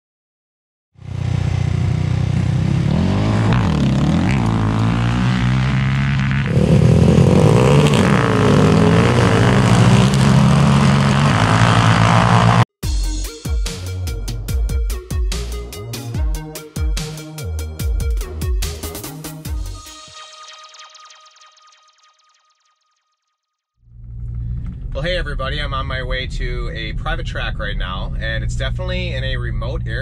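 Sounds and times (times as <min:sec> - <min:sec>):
quad engines at full throttle: 0:01.0 - 0:12.7
music with steady beat: 0:12.8 - 0:21.6.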